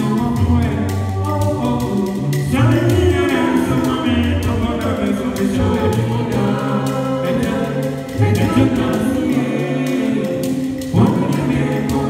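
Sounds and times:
group singing in harmony: 0:00.0 - 0:12.0.

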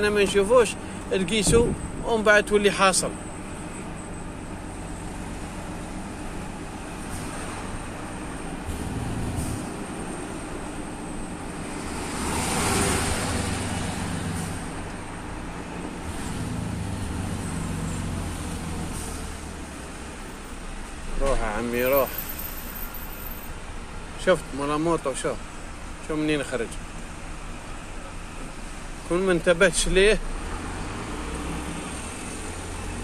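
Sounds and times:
truck passing close by: 0:04.8 - 0:20.0, 0:30.3 - 0:33.0.

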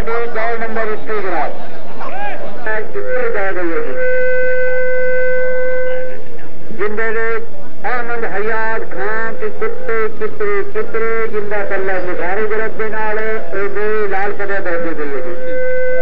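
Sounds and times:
man calling out loudly: 0:00.0 - 0:04.5, 0:06.8 - 0:15.6
steady tone: 0:00.0 - 0:16.0.

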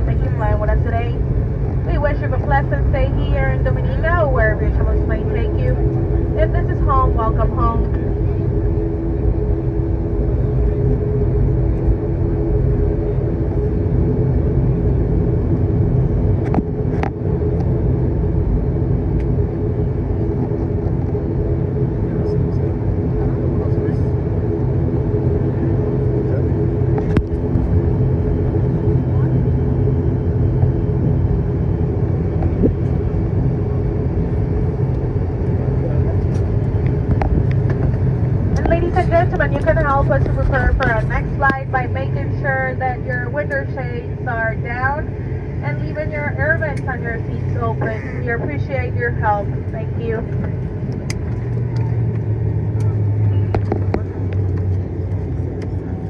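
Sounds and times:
turboprop engine drone: 0:00.0 - 0:56.0.

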